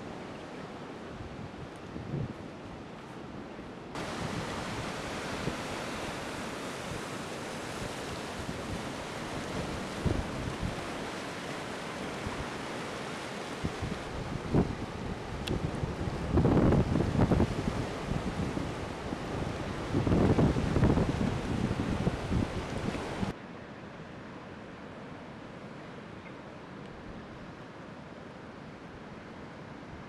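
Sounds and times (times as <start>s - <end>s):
breaking waves: 4.0s - 23.4s
wind buffeting microphone: 8.1s - 11.0s, 13.6s - 23.3s.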